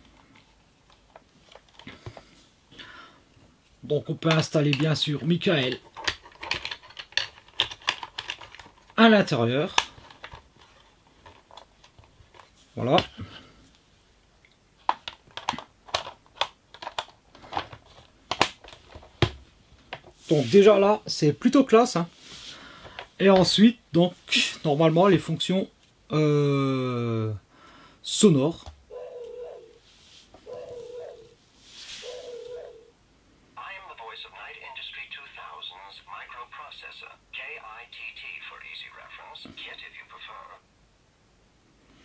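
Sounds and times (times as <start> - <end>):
plastic panels clicking and tapping: 5.6 - 9.0, 14.8 - 20.1
tinny recorded voice speaking: 33.6 - 40.7.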